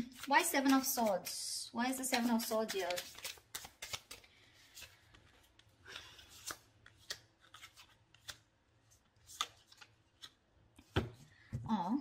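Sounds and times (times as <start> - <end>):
cards rustling and clicking: 0.0 - 11.1.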